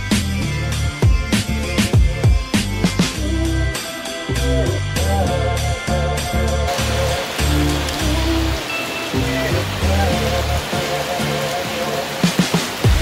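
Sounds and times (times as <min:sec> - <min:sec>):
background music with beat: 0:00.0 - 0:13.0
heavy rain on pool: 0:06.6 - 0:13.0.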